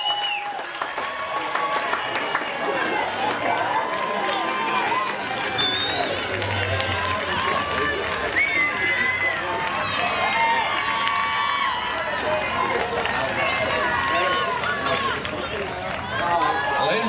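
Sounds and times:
players and spectators shouting: 2.6s - 17.0s.

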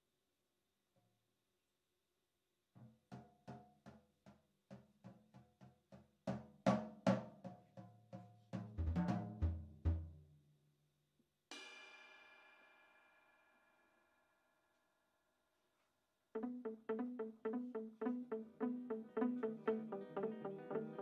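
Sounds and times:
jazz drum solo: 8.0s - 10.1s
band playing final chord: 16.4s - 21.0s.

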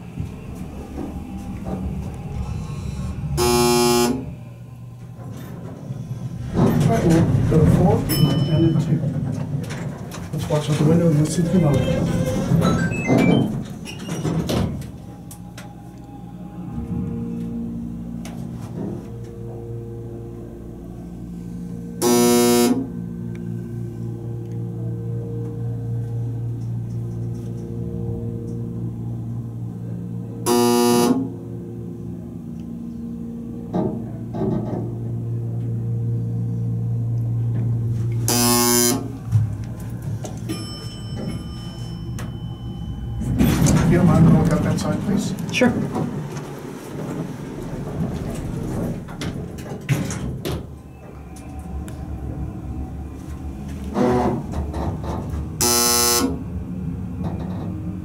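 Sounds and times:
elevator electric hum: 0.0s - 58.0s
short loud buzzing tones: 3.3s - 4.4s, 22.0s - 22.9s, 30.5s - 31.3s, 38.3s - 39.2s, 55.6s - 56.5s.

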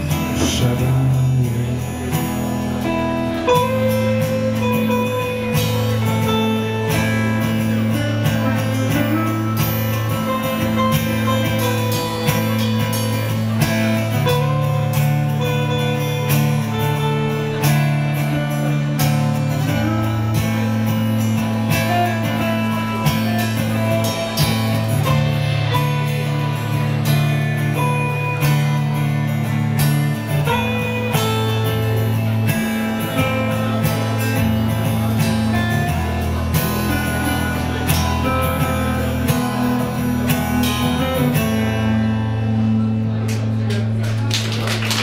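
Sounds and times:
drum kit: 0.0s - 41.7s
electric guitar: 0.0s - 45.0s
low bass notes: 0.0s - 45.0s
strummed acoustic guitar: 0.0s - 45.0s.

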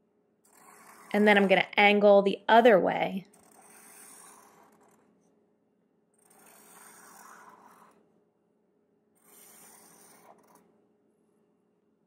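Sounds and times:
marker scratching on paper: 0.5s - 1.7s, 3.4s - 5.1s, 6.2s - 8.0s, 9.2s - 10.6s.

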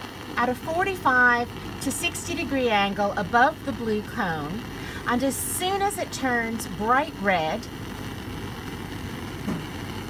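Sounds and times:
bunsen burner flame burning: 0.0s - 10.0s.

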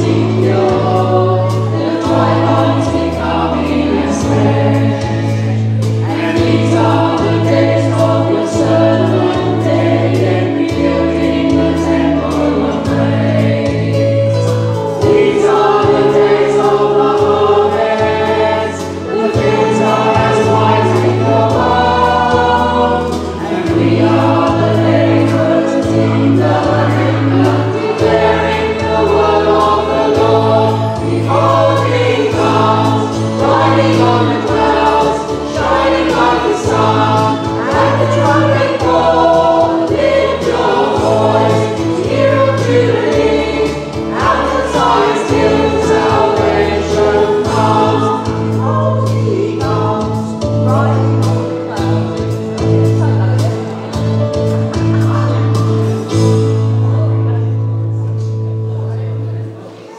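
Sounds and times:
choir singing: 0.0s - 57.6s
instrumental accompaniment: 0.0s - 59.9s.

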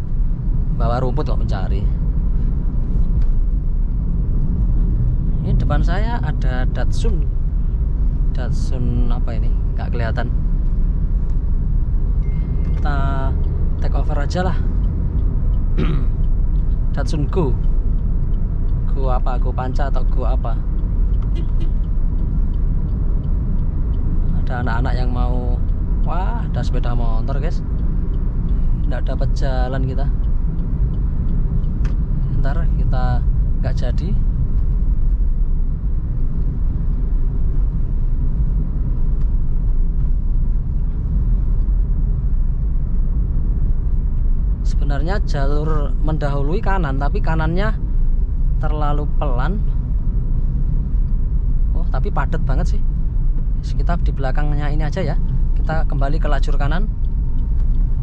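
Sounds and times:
car cabin road and engine rumble: 0.0s - 58.0s.

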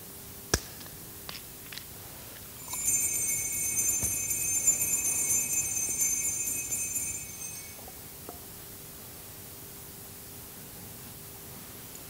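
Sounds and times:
altar bells jingling: 2.6s - 8.2s.

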